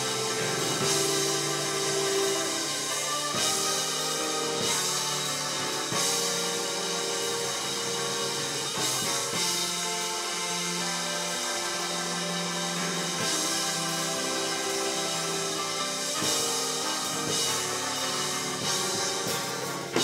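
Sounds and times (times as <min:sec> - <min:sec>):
drum kit playing: 0:00.0 - 0:20.0
live band sustained chords: 0:00.0 - 0:20.0.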